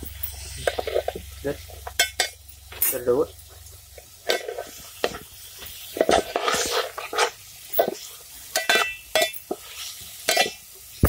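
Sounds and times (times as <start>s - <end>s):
food frying: 0.0s - 11.0s
spoon scraping metal pot: 4.2s - 10.6s.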